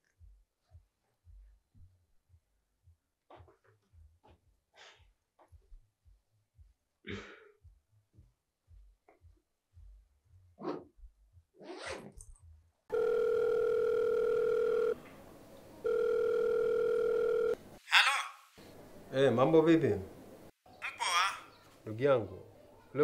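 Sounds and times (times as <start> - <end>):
telephone ringback tone beeps: 12.9 - 15.0, 15.8 - 17.6.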